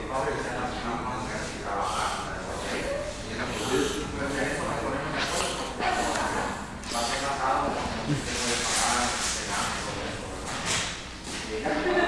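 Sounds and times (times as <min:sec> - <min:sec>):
indistinct talking: 0:00.0 - 0:10.5.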